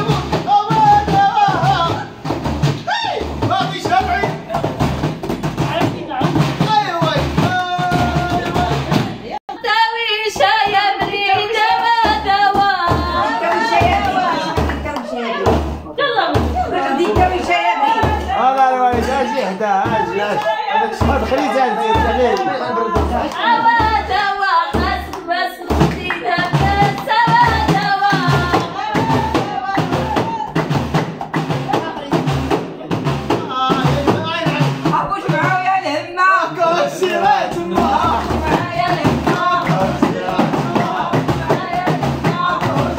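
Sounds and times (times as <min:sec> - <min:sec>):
frame drums beating: 0:00.0 - 0:09.4, 0:10.2 - 0:42.9
women singing folk song: 0:07.6 - 0:30.8, 0:34.8 - 0:42.9
hands clapping: 0:13.5 - 0:15.4, 0:20.2 - 0:23.8, 0:25.0 - 0:32.7, 0:37.0 - 0:42.9.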